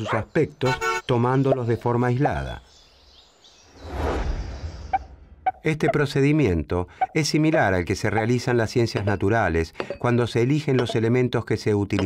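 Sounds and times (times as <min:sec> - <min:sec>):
soft whoosh with low rumble: 0:03.7 - 0:05.5.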